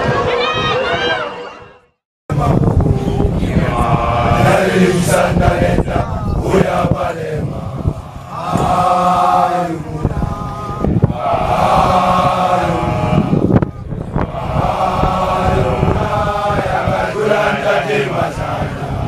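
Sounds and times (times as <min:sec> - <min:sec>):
group of men chanting: 0:03.5 - 0:19.0.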